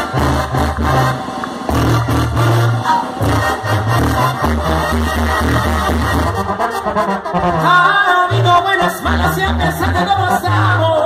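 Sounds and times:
trumpets: 0.0s - 11.0s
tuba bass line: 0.0s - 11.0s.

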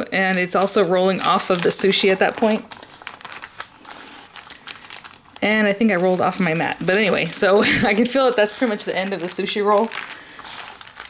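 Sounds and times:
plastic-wrapped mat crinkling: 0.0s - 11.0s.

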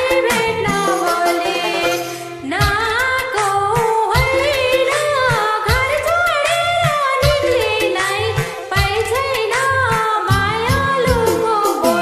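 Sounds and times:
person singing with pitch slides: 0.0s - 12.0s
steady drum beat: 0.0s - 12.0s.

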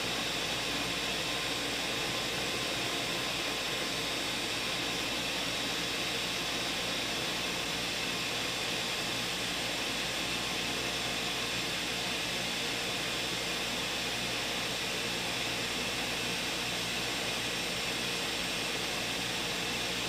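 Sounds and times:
blender motor whirring: 0.0s - 20.0s.

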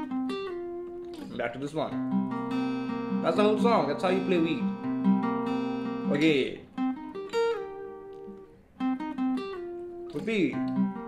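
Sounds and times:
acoustic guitar riff: 0.0s - 11.0s.

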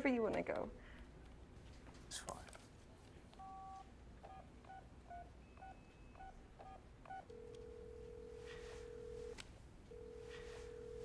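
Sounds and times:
telephone keypad tones: 3.4s - 11.0s
telephone ringing tone: 5.4s - 11.0s.

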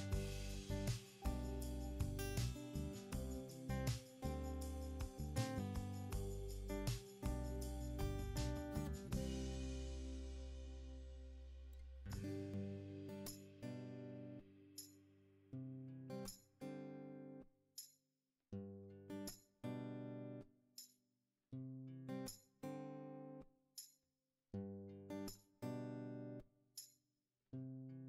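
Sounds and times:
acoustic guitar chords: 0.0s - 14.6s.

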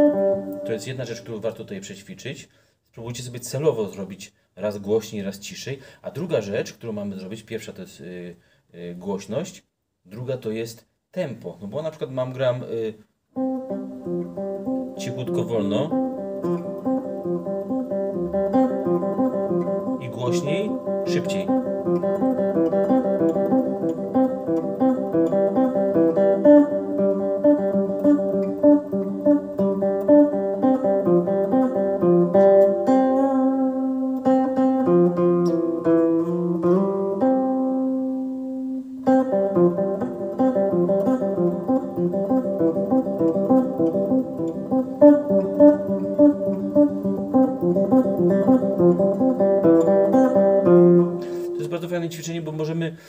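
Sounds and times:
clean electric guitar picking: 0.0s - 0.9s, 13.4s - 52.2s.

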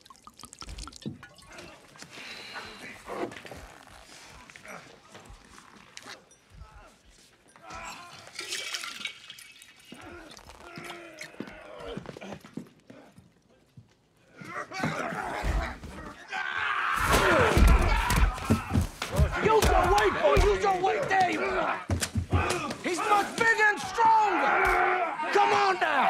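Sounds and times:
liquid pouring into a glass: 0.0s - 2.0s, 8.3s - 10.6s.

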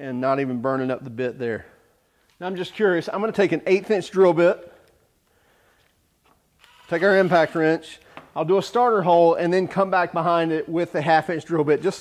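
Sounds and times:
man talking: 0.0s - 4.8s, 6.9s - 12.0s.

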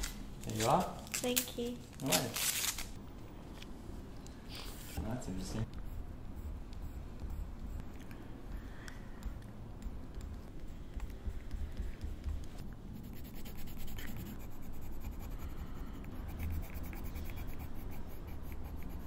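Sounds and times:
coloured pencil scribbling on paper: 10.2s - 19.0s.

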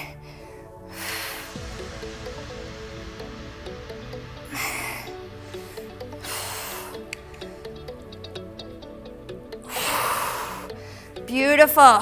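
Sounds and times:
workout music with steady beat: 0.0s - 12.0s.

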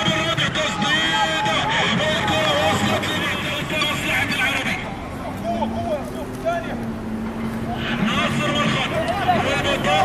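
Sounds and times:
people shouting and calling: 0.0s - 10.0s.

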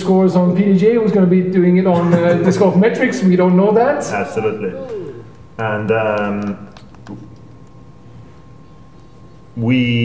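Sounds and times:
faint steady whine: 0.0s - 10.0s
low steady background noise: 0.0s - 10.0s.

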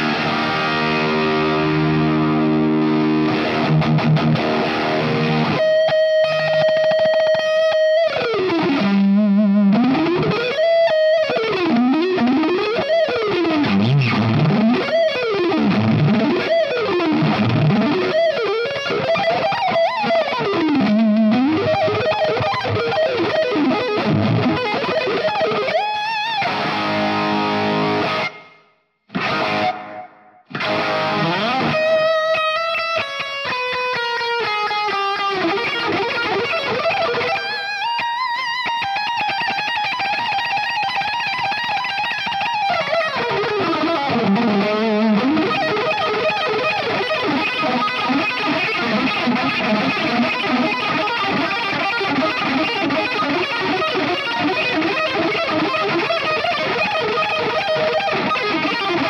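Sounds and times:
distorted electric guitar lead: 0.0s - 59.0s.

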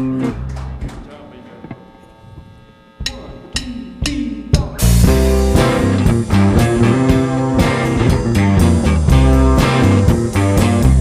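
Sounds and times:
electrical hum from amplifiers: 0.0s - 11.0s.

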